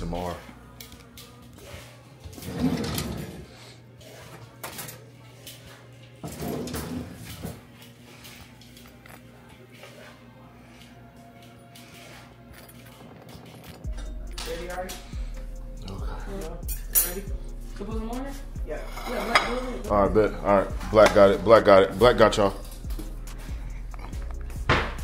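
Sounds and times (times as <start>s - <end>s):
faint background music: 0.0s - 25.0s
utensils and dishes clinking: 0.1s - 15.1s, 16.6s - 17.3s, 18.7s - 25.0s
steady low hum: 7.7s - 25.0s.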